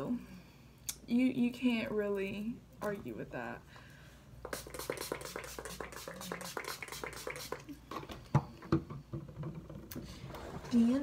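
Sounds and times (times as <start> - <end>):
spray bottle spritzing: 4.4 - 7.7.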